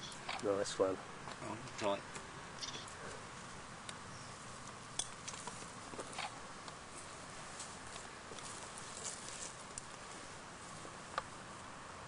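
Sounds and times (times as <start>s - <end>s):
faint steady hiss: 0.0s - 12.0s
rustles: 0.0s - 12.0s.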